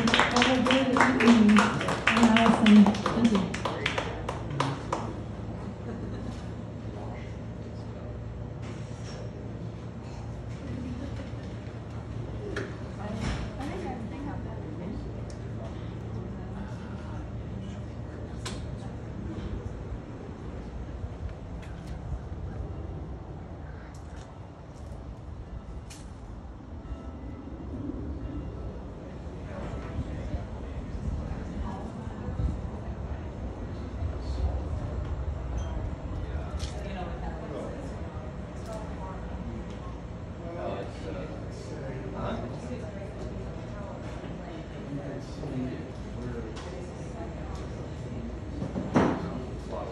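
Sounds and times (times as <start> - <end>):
murmured conversation: 0.0 - 25.6, 27.5 - 49.9
street traffic rumble: 0.0 - 49.7
faint hum: 0.0 - 49.9.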